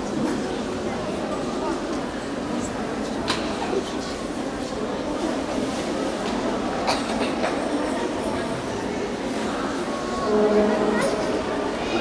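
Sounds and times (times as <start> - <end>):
sports hall din: 0.0 - 12.0.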